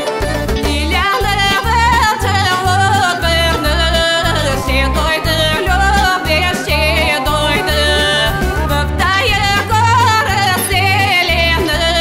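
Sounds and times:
band with steady bass beat: 0:00.0 - 0:12.0
woman singing ornamented melody: 0:00.2 - 0:12.0.

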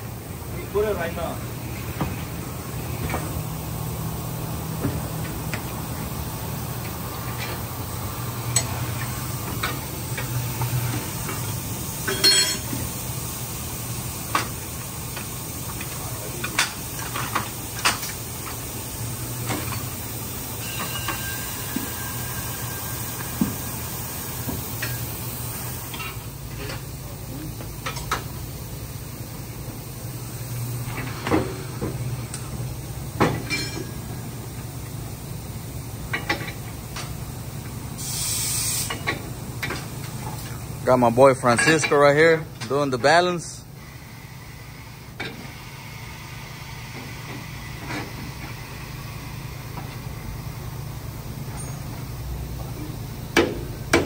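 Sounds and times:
air hiss burst: 0:37.9 - 0:39.1.

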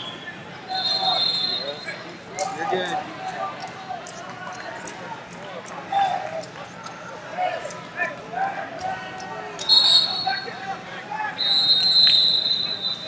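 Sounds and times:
chatter of many voices: 0:00.0 - 0:13.0.

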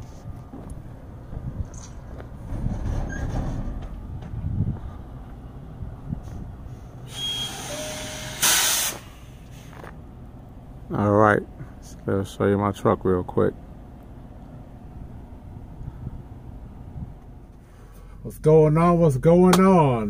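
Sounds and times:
low rumbling background: 0:00.0 - 0:07.7, 0:09.0 - 0:20.0
compressed air hiss: 0:07.0 - 0:09.7.

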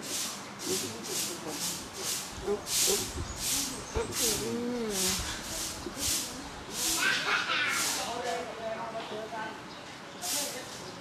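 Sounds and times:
short rhythmic hisses: 0:00.0 - 0:08.1.

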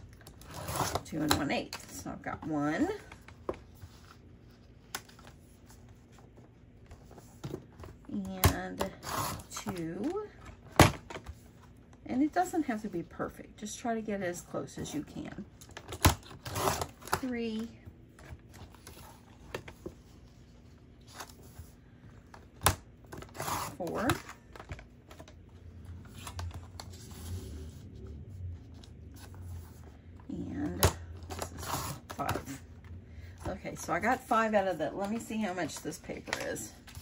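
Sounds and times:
quiet paper scraping: 0:25.9 - 0:30.2.

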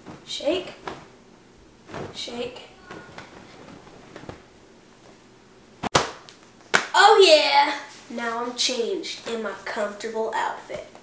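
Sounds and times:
fabric whip-like crack: 0:00.0 - 0:01.2, 0:01.8 - 0:05.2, 0:05.8 - 0:07.0
cloth rustling: 0:00.0 - 0:06.0.

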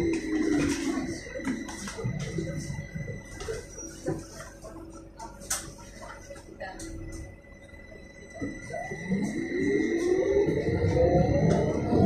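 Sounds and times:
trolleybus motor whining: 0:00.0 - 0:12.0.

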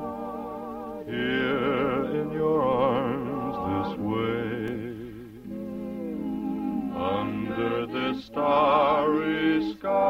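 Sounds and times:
orchestral ballad accompaniment: 0:00.0 - 0:09.9.

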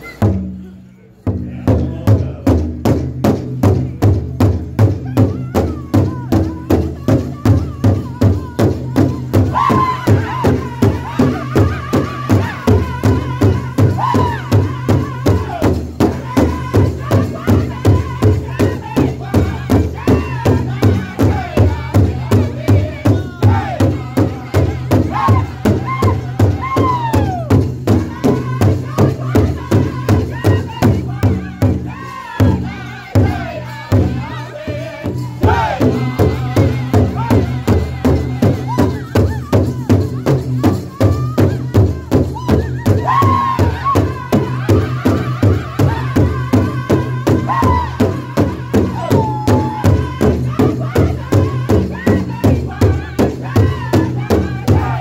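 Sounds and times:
large hide drum steady beat: 0:00.1 - 0:55.0
group singing: 0:06.2 - 0:55.0.

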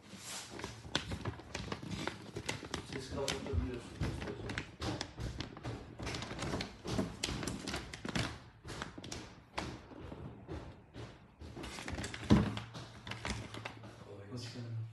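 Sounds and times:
plastic bag crinkling: 0:00.5 - 0:05.1.

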